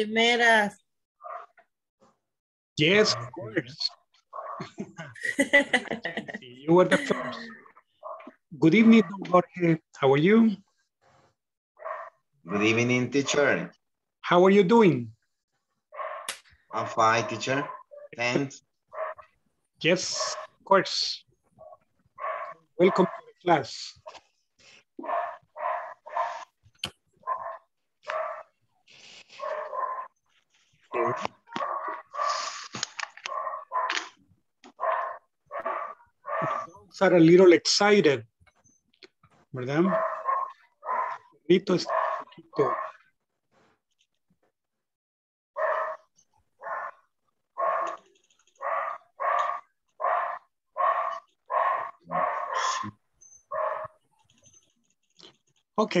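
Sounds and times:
dogs barking: 0:01.2 - 0:01.5, 0:02.8 - 0:04.8, 0:06.9 - 0:09.3, 0:11.8 - 0:13.8, 0:15.9 - 0:19.4, 0:20.0 - 0:20.6, 0:21.6 - 0:23.4, 0:25.0 - 0:26.6, 0:27.2 - 0:28.6, 0:29.3 - 0:30.2, 0:30.9 - 0:32.6, 0:33.2 - 0:36.8, 0:39.8 - 0:43.0, 0:45.6 - 0:54.0.

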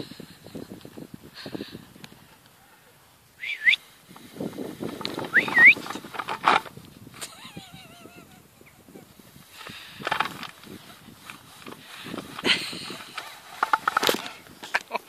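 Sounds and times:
rustling of lead and grass: 0:00.0 - 0:15.0.

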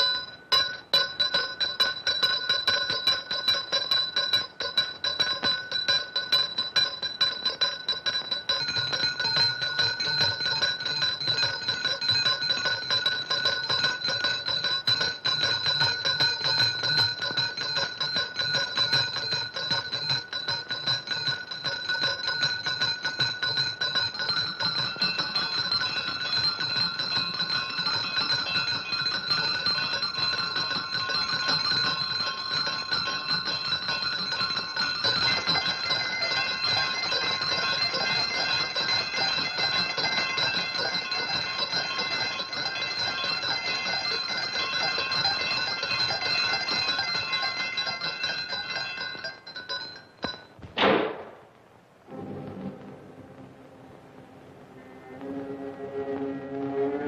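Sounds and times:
bell tone: 0:00.0 - 0:50.6
bells ringing in jangling peal: 0:00.0 - 0:50.6.

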